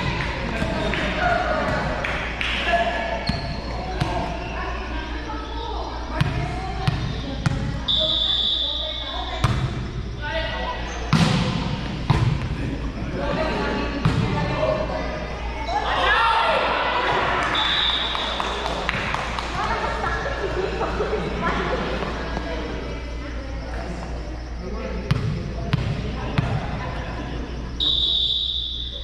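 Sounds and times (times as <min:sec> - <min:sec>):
players calling and shouting: 0:00.0 - 0:29.0
sneaker squeaks on court floor: 0:03.1 - 0:04.6.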